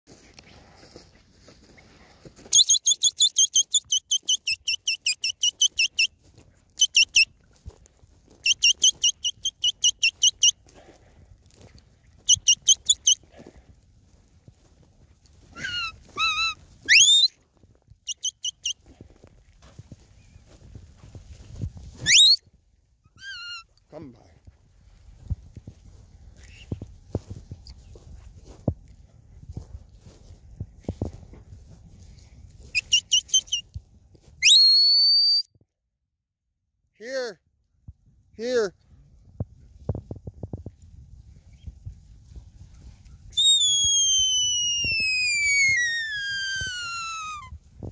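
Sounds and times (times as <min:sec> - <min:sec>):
dog herding whistles: 0:02.5 - 0:06.2, 0:06.8 - 0:07.3, 0:08.4 - 0:10.6, 0:12.2 - 0:13.2, 0:15.5 - 0:17.4, 0:18.1 - 0:18.8, 0:22.0 - 0:22.4, 0:32.7 - 0:33.6, 0:34.4 - 0:35.5, 0:43.3 - 0:47.5.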